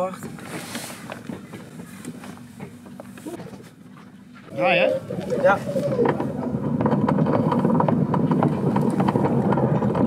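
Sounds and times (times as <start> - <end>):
outboard motor idling: 0.0 - 10.0.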